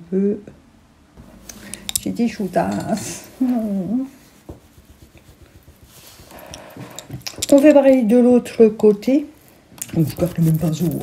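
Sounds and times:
makeup brush rubbing over skin: 2.3s - 6.5s, 9.9s - 11.0s.

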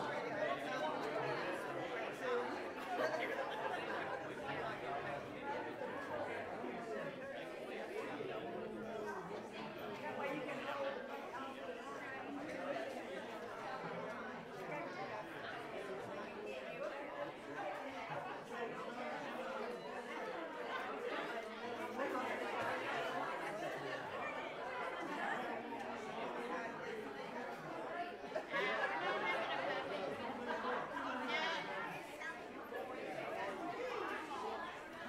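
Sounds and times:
crowd chatting in a hall: 0.0s - 35.0s.

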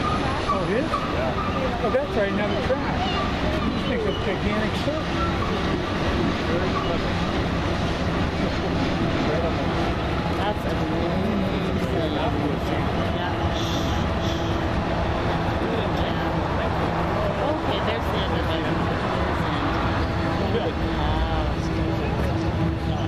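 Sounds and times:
diesel locomotive hum: 0.0s - 23.0s
distant freight train drone: 0.0s - 23.0s.

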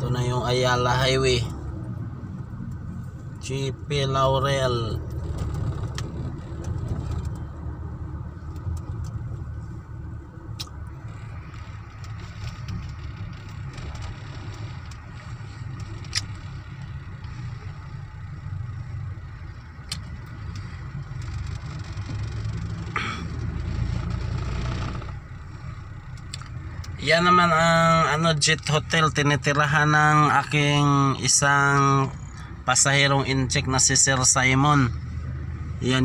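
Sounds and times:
car engine and road rumble: 0.0s - 36.0s
faint clicks: 19.6s - 22.4s.

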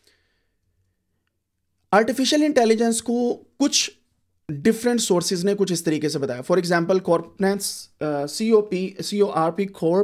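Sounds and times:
man speaking: 1.9s - 10.0s.

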